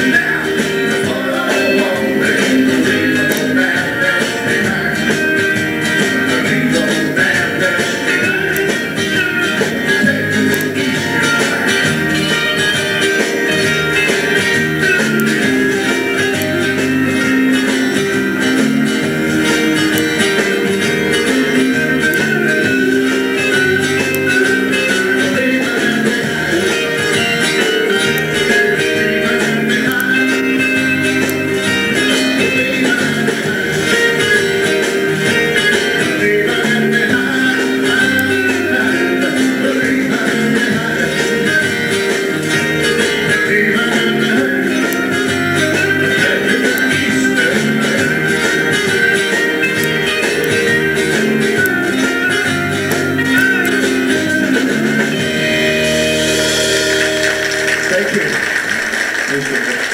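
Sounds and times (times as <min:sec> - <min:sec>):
live country band playing: 0:00.0 - 0:59.9.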